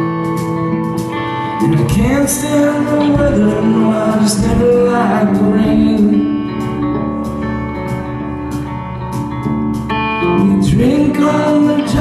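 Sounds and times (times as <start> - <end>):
electric guitar chords: 0.0 - 12.0
live rock band playing: 0.0 - 12.0.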